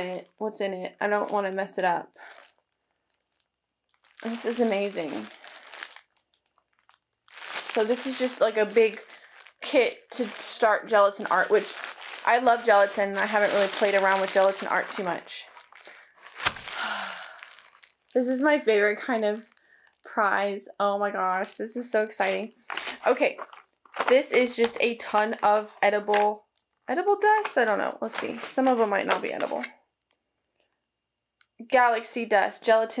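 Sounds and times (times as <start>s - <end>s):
plastic bag crinkling: 0.0s - 20.1s, 21.4s - 29.7s
sharp plastic crack: 15.6s - 16.8s.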